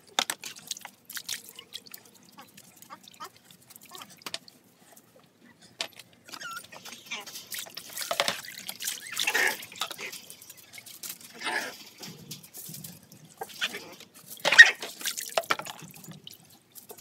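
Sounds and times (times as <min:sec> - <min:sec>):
water dripping in plastic basin: 0:00.0 - 0:04.7, 0:05.8 - 0:17.0
water poured and splashing: 0:00.0 - 0:05.2, 0:05.8 - 0:17.0.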